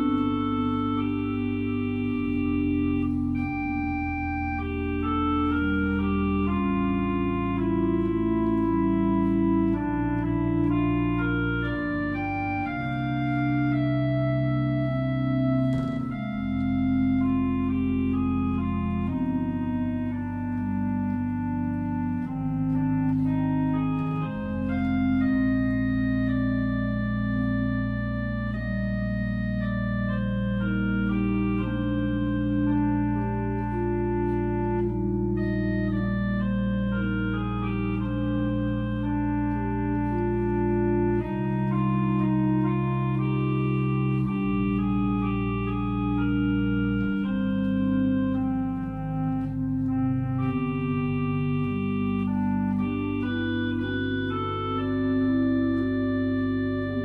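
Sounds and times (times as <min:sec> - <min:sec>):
organ playing sustained chords: 0:00.0 - 0:57.0.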